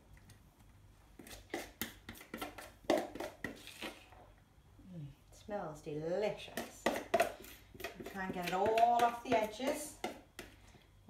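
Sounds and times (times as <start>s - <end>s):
spoon scraping a bowl: 1.2s - 4.2s, 6.6s - 10.5s.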